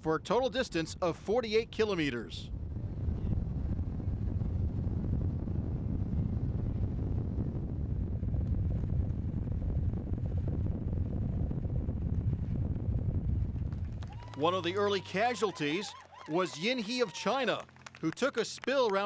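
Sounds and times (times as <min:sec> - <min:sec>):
wind buffeting microphone: 0:00.4 - 0:19.0.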